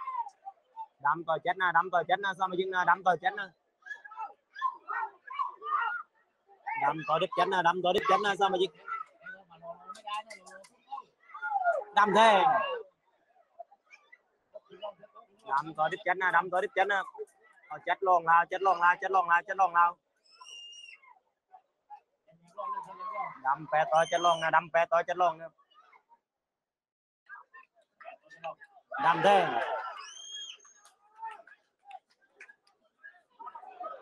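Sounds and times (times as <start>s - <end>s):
commentary speech: 0.0s - 13.0s, 14.6s - 20.0s, 22.0s - 25.5s, 27.3s - 30.2s
faint chirps: 20.2s - 21.0s.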